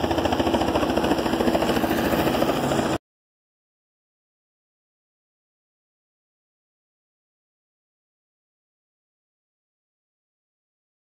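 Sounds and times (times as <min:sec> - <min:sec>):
engine pulsing drone: 0:00.0 - 0:03.0.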